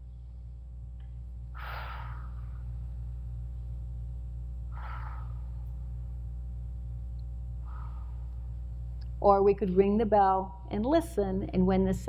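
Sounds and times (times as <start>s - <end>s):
steady low hum: 0.0s - 12.0s
slow deliberate breaths: 1.6s - 3.2s, 4.7s - 6.2s, 7.6s - 8.8s.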